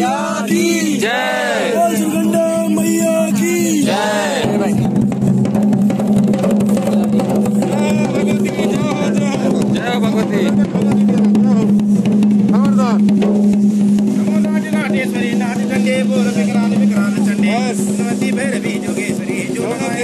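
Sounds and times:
voices singing and calling: 0.0 - 5.0
drums beaten in fast rhythm: 0.0 - 20.0.

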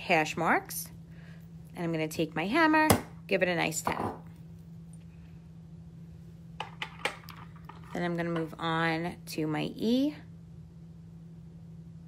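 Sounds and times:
quiet low hum: 0.0 - 12.0.

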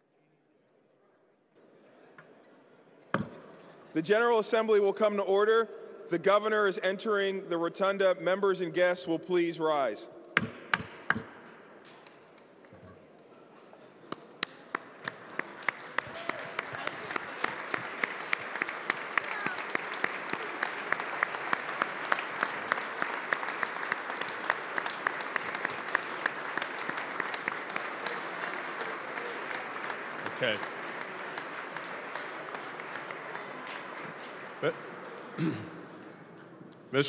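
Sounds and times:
close hand claps: 14.1 - 35.2
audience applauding: 14.4 - 35.4.

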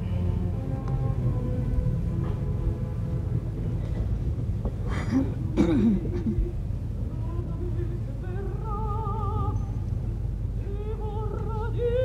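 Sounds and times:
quiet orchestral music: 0.0 - 12.0
steady low rumble: 0.0 - 12.0.

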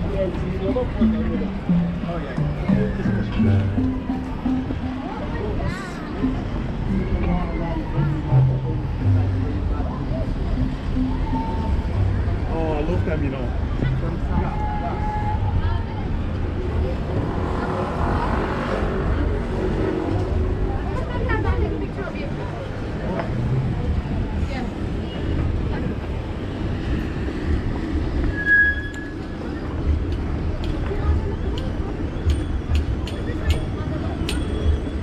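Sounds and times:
passers-by talking: 0.0 - 28.4, 29.0 - 35.0
road traffic rumble: 0.0 - 35.0
high squeak: 28.2 - 29.4.

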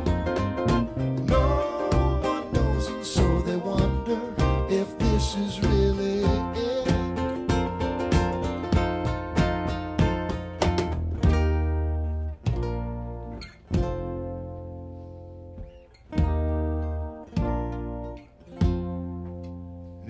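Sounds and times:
deep bass notes: 0.0 - 20.0
ukulele and acoustic guitar chords: 0.0 - 20.0.

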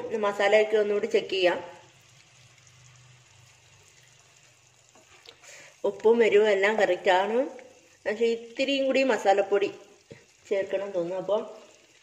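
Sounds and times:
food sizzling in a frying pan: 0.0 - 12.0.

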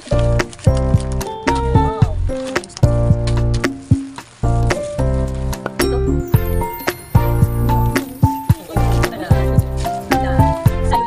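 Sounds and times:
bright melodic background music: 0.0 - 11.0
clicking percussive beat: 0.2 - 10.8.

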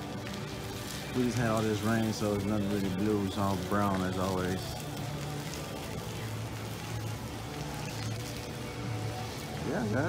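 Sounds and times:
faint background music: 0.0 - 10.0
outdoor ambience: 0.0 - 10.0.

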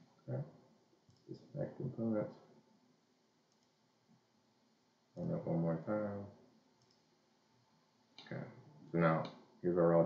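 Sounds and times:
computer mouse click: 3.5 - 3.8, 6.8 - 7.1.

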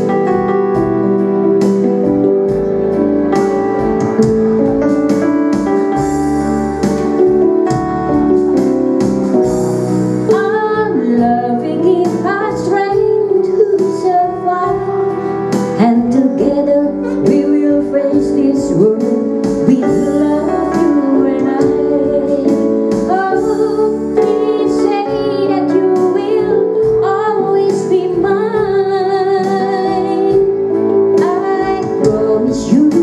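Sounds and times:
electronic keyboard: 0.0 - 33.0
woman singing pop ballad: 10.2 - 33.0.

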